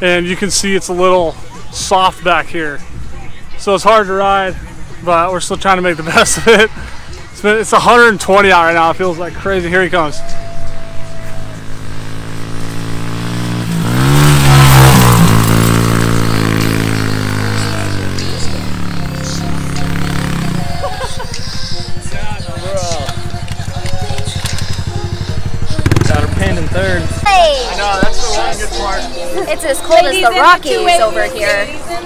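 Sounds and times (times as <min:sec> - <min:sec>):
motorbike engine revving: 0:10.2 - 0:28.8.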